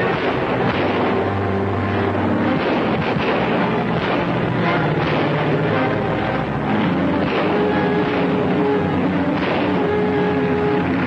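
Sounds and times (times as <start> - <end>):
background music: 0.0 - 11.0
car engines pulling away: 0.0 - 11.0.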